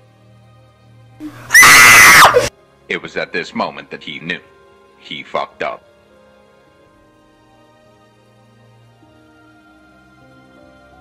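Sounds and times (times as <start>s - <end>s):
person screaming high-pitched: 1.2s - 2.5s.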